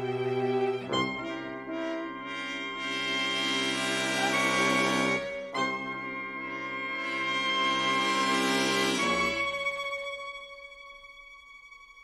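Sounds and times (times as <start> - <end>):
orchestral brass music: 0.0 - 10.0.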